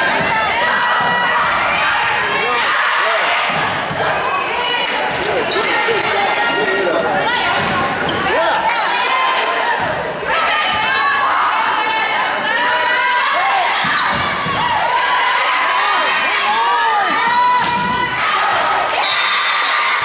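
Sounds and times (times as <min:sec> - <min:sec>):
sneakers squeaking on floor: 0:07.0 - 0:09.0, 0:13.9 - 0:15.1.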